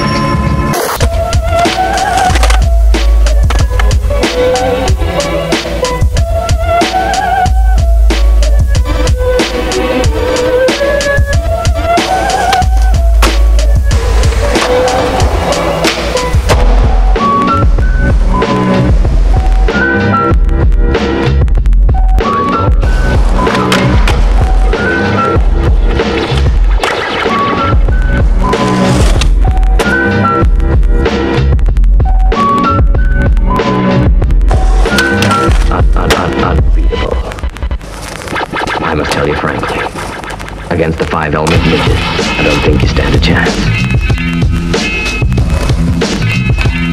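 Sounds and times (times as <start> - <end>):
music with heavy bass beat: 0.7 - 38.8, 41.5 - 46.9
skateboard wheels rolling: 8.8 - 20.9, 22.2 - 31.0, 43.6 - 46.9.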